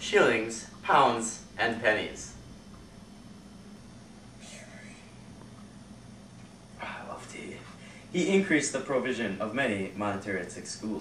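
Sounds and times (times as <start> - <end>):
steady low hum: 0.0 - 11.0
faint whisper: 4.3 - 5.3.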